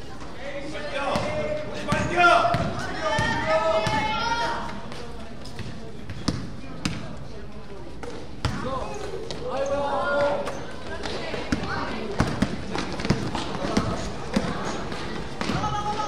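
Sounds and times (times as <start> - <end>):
voices in a hall: 0.0 - 16.0
basketball bouncing on gym floor: 1.2 - 4.1, 5.5 - 7.1, 8.4 - 9.4, 11.0 - 14.6.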